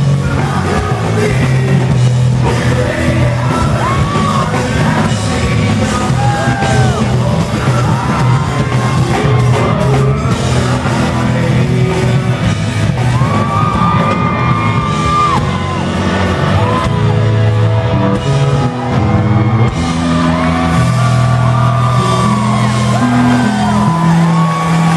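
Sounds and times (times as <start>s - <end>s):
rock band playing live: 0.0s - 24.9s.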